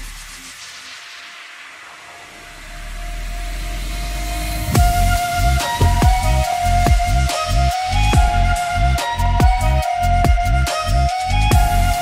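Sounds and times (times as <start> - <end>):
hissing noise sweep: 0.0 - 12.0
low bass: 2.5 - 12.0
kick drum: 4.8 - 5.1, 5.8 - 7.2, 8.1 - 8.5, 9.4 - 10.7, 11.5 - 12.0.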